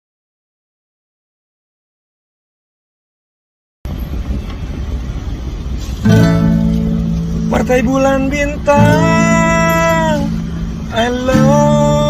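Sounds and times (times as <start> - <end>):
car cabin rumble: 3.9 - 12.0.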